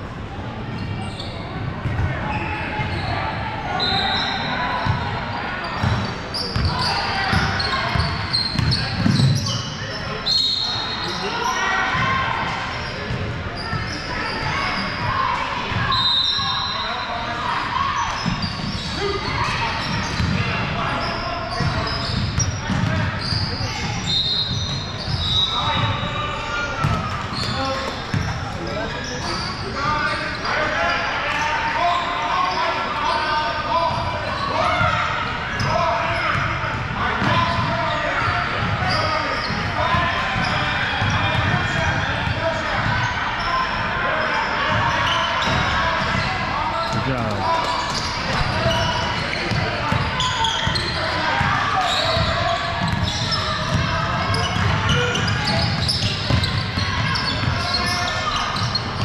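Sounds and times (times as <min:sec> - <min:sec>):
chatter and calls of people: 0:00.0 - 0:59.0
basketballs bouncing on wooden floor: 0:20.1 - 0:20.4, 0:52.1 - 0:57.6.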